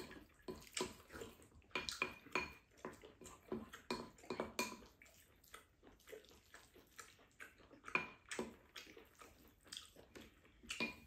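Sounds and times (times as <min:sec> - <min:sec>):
wooden spoons scraping ceramic bowls: 0:00.0 - 0:05.0, 0:10.8 - 0:11.0.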